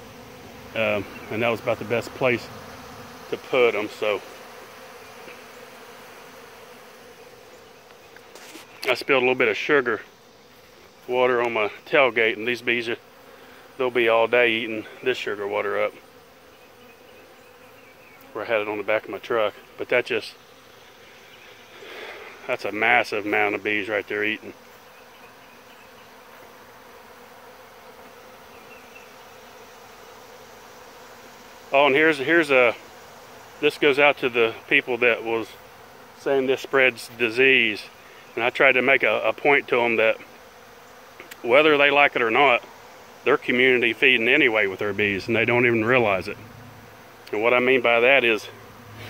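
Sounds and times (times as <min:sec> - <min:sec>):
bees humming: 0:00.0 - 0:49.0.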